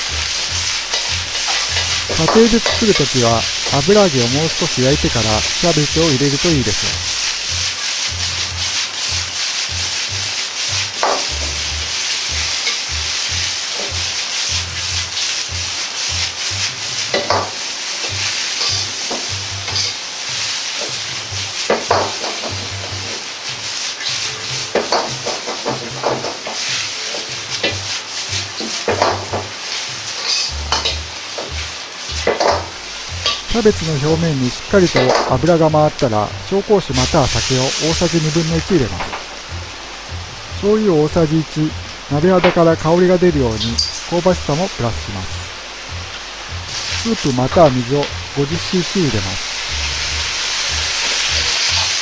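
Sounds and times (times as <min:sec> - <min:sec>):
ladle scraping and knocking wok: 0:00.0 - 0:03.8, 0:06.2 - 0:20.0, 0:23.9 - 0:33.6, 0:34.8 - 0:35.3, 0:45.7 - 0:47.1, 0:49.4 - 0:52.0
food sizzling in a wok: 0:00.0 - 0:52.0.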